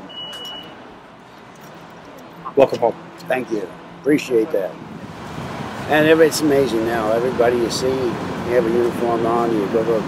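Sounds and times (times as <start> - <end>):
short high-pitched beep: 0.0 - 0.8.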